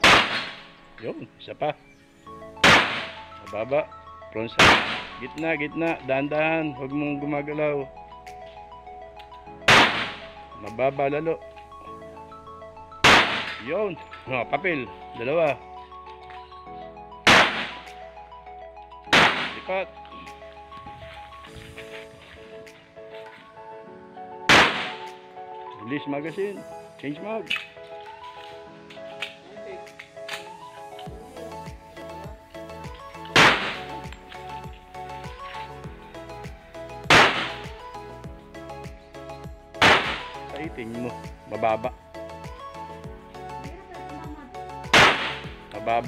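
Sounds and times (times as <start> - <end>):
pistol shot: 0.0 - 0.6, 2.6 - 3.2, 4.6 - 5.2, 9.7 - 10.2, 13.0 - 13.6, 17.3 - 17.9, 19.1 - 19.6, 24.5 - 25.1, 33.3 - 33.9, 37.1 - 37.7, 39.8 - 40.4, 44.9 - 45.5
background music: 0.0 - 46.0.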